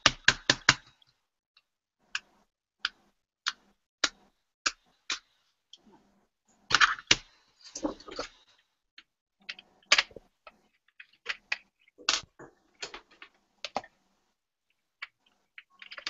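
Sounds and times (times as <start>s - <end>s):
wooden pencils clicking on desk: 15.0s - 16.0s.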